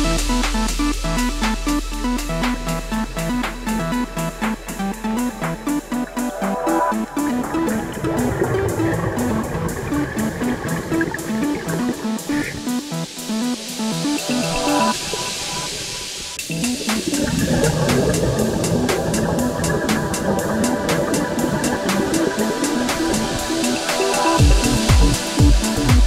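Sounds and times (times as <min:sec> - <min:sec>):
hiss: 0:00.0 - 0:26.0
plucked guitar over a beat: 0:16.4 - 0:23.4.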